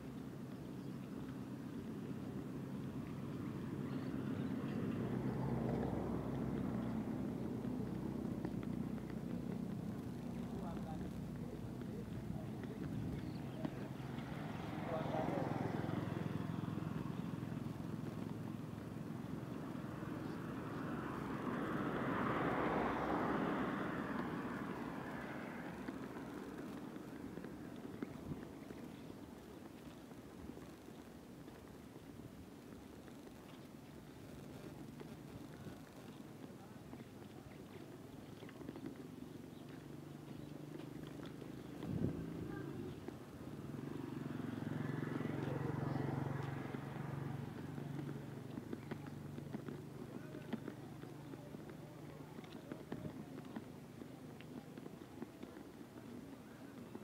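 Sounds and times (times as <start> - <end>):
vehicle passing: 1.2 - 57.0.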